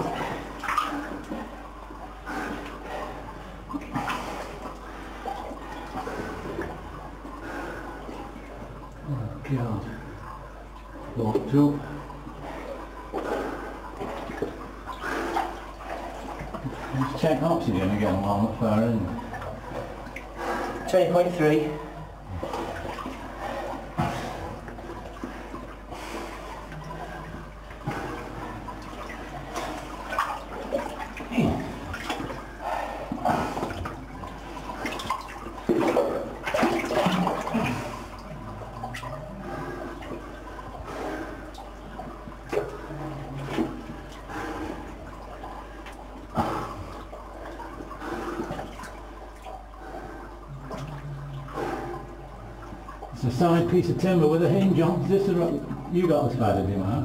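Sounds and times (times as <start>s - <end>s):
person wading through water: 0.0s - 57.0s.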